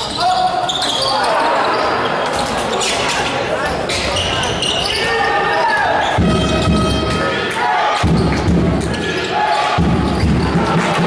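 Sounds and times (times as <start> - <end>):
spectators' voices and calls: 0.0 - 11.0.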